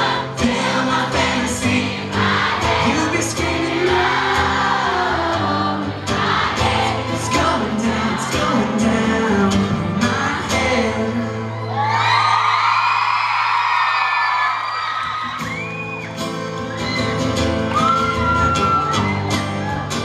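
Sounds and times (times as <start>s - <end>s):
acoustic guitars strummed: 0.0s - 11.7s, 15.3s - 20.0s
person singing: 0.0s - 11.8s
audience screaming: 11.3s - 20.0s.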